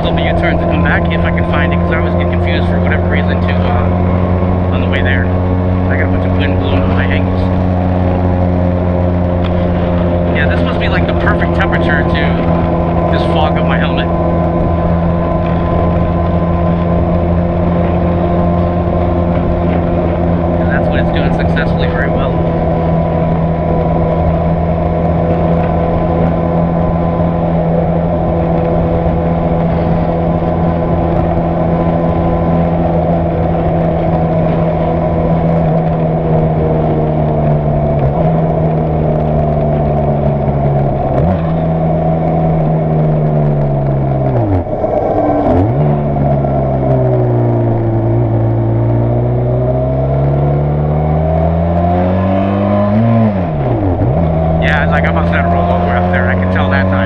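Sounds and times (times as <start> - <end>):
motorcycle engine and exhaust: 0.0 - 57.0
wind rush on microphone: 0.0 - 57.0.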